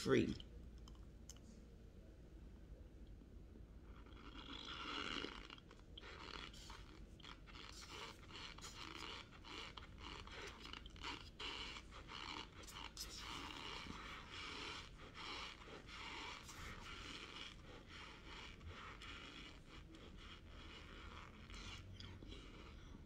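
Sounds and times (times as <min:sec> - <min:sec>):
chewing crunchy food: 0:03.8 - 0:23.0.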